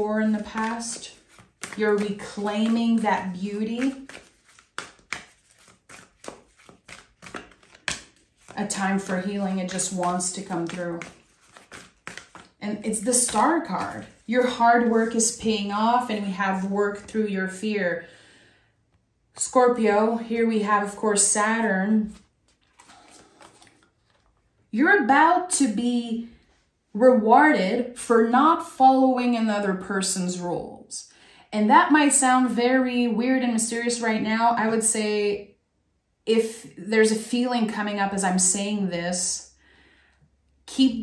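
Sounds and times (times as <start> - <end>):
cards being shuffled: 0.2 - 17.1, 22.0 - 24.4
sharp card slaps: 0.5 - 3.0, 3.8 - 14.3.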